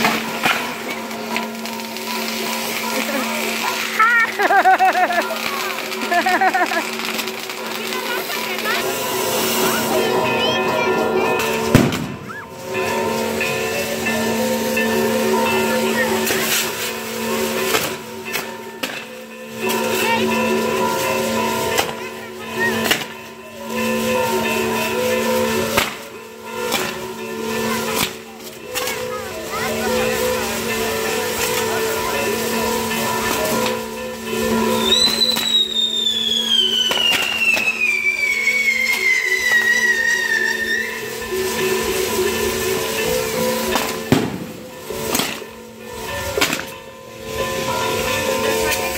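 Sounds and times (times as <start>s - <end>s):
firework spark fountains hissing: 0.0s - 48.9s
whistling firework falling in pitch: 34.9s - 41.0s.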